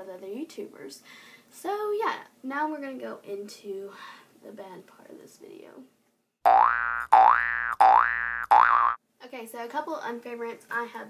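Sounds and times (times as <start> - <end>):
cartoon boing: 6.5 - 9.0.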